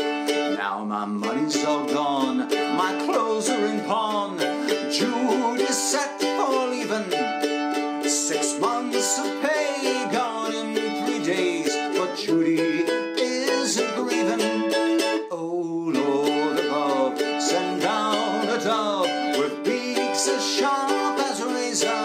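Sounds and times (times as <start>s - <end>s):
man singing: 0.0s - 22.0s
mandolin strummed and picked: 0.0s - 22.0s.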